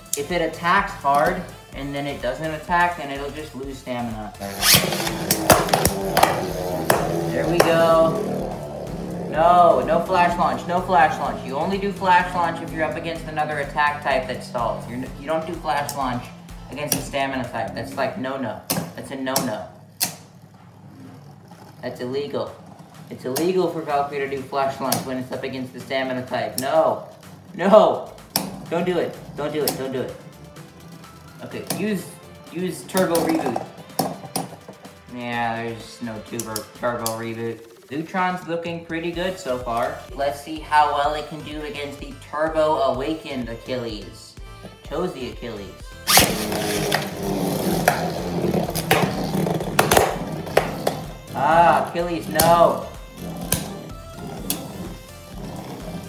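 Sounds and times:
spinning tops whirring: 4.2 - 37.9, 45.9 - 56.0.

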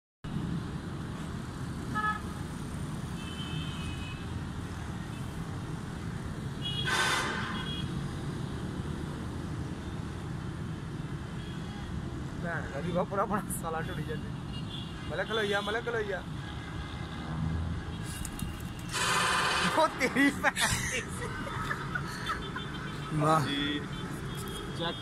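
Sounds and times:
distant road traffic rumble: 4.4 - 25.0.

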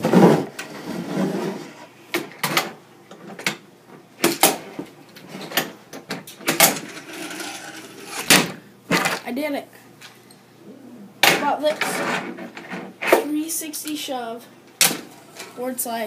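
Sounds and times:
board scraping along rail: 0.0 - 1.9, 6.8 - 8.3.

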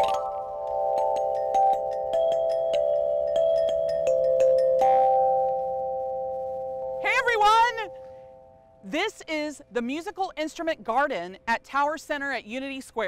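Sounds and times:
metal tubular chimes ringing: 0.0 - 9.4.

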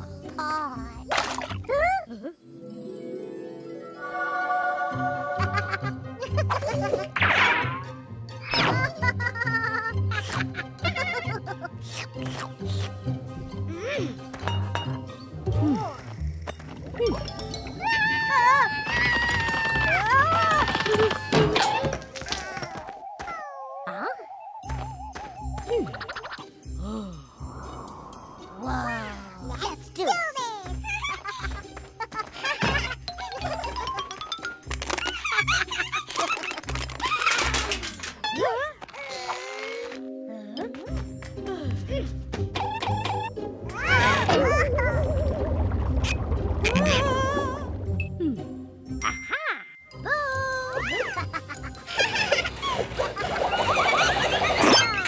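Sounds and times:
cartoon background music: 0.0 - 55.0
noisy cartoon scramble: 50.8 - 55.0.

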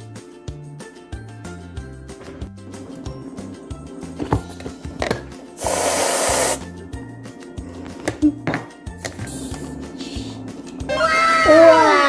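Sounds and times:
background music with beat: 0.0 - 10.8
aerosol whipped cream hiss: 5.6 - 6.8.

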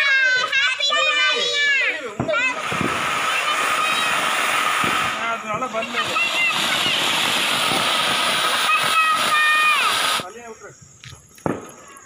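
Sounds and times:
children calling out: 0.0 - 10.2
firework spraying sparks hiss: 0.0 - 10.6.

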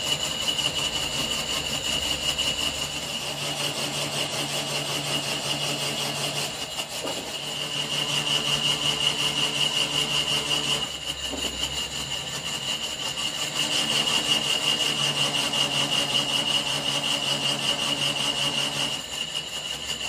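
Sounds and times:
metal lathe machining: 0.0 - 20.0.

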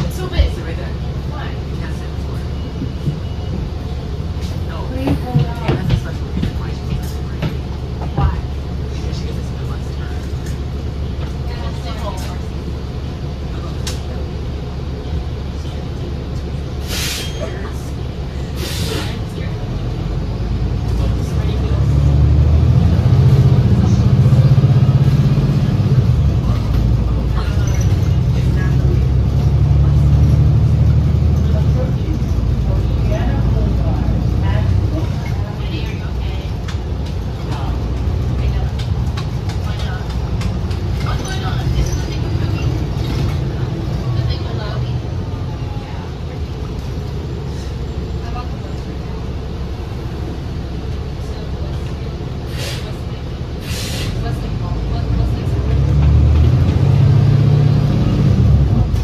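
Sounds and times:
bus drivetrain drone: 0.0 - 59.0
short hiss: 16.8 - 17.4, 18.6 - 19.2, 53.6 - 54.2.

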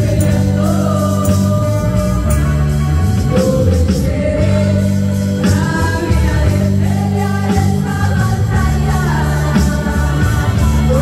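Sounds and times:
electric guitar: 0.0 - 11.0
low bass notes: 0.0 - 11.0
woman singing gospel: 0.0 - 11.0.

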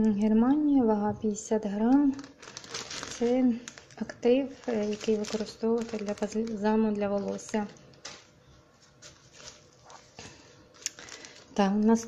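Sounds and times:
plastic bag rustling: 1.7 - 12.0.

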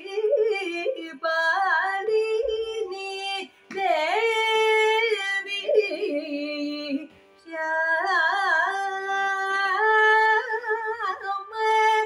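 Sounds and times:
woman singing with ornaments: 0.0 - 12.0.

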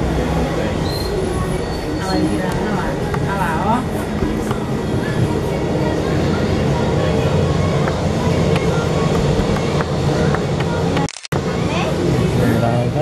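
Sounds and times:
jet engines at taxi power: 2.4 - 13.0.

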